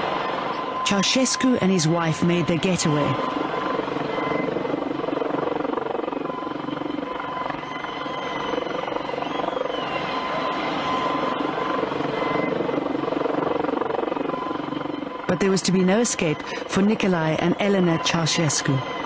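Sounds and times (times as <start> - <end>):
helicopter engine and rotor drone: 0.0 - 19.0.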